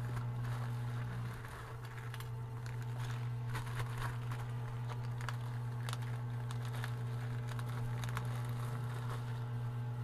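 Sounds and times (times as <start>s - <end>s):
plastic mailer bag crinkling: 0.0s - 9.7s
steady low hum: 0.0s - 10.0s.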